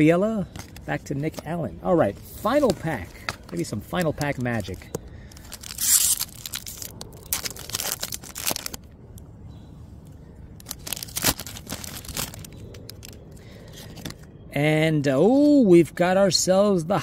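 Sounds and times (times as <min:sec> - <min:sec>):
foil wrapper tearing and crinkling: 0:03.5 - 0:08.9, 0:10.6 - 0:13.2.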